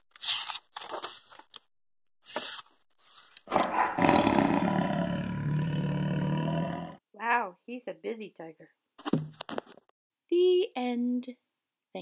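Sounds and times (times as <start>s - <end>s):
book rustling and closing: 0.1s - 1.6s, 2.3s - 3.5s
tiger roar: 3.5s - 7.0s.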